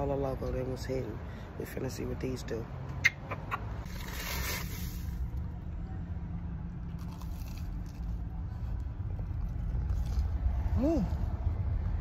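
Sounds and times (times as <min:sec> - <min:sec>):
crunching churro: 0:03.8 - 0:11.8
low rumble inside a car: 0:05.1 - 0:12.0
chewing: 0:06.8 - 0:10.5.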